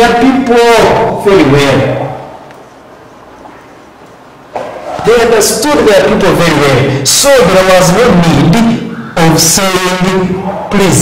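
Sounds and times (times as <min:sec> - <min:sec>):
man's voice: 0:00.0 - 0:02.2, 0:05.0 - 0:11.0.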